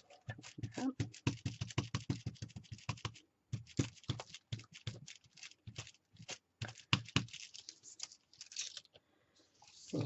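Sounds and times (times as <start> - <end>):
rapid dauber taps on cardboard: 0.3 - 5.1, 5.7 - 7.4.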